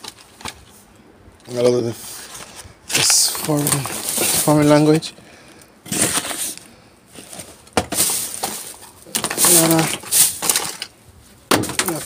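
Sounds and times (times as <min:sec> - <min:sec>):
plastic bag crinkling: 0:02.4 - 0:05.0, 0:05.9 - 0:11.0.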